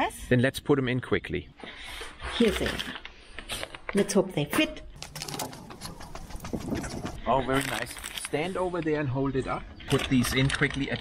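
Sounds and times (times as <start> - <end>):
plastic packaging crinkling: 5.0 - 8.3
pigeon cooing: 5.2 - 7.2.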